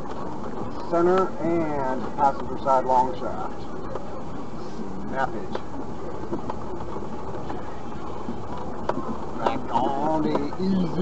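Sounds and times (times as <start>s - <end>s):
light knocks and rattles: 5.5s - 10.6s.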